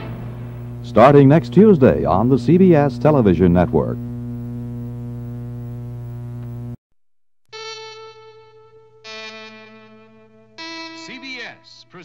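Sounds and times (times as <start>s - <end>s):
buzzy electrical mains hum: 0.0s - 6.8s.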